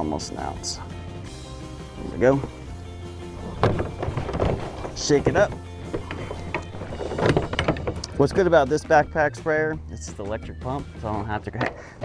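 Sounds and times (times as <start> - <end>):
background music: 0.0 - 12.0
plastic containers knocking: 3.4 - 9.0.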